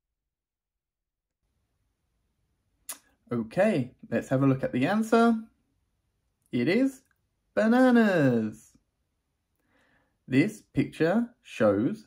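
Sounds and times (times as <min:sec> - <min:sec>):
faint room hiss: 0:01.4 - 0:12.0
short sharp click: 0:02.9 - 0:03.1.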